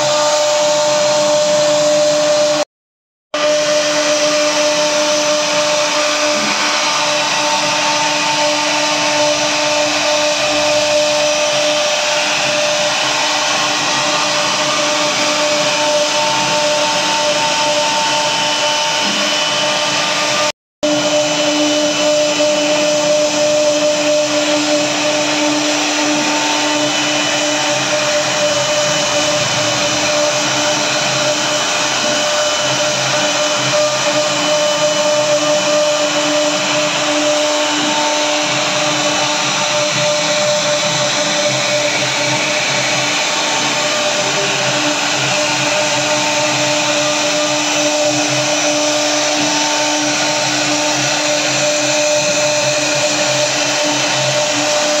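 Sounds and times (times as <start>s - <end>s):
router spindle motor whining: 0.0s - 2.6s, 3.4s - 55.0s.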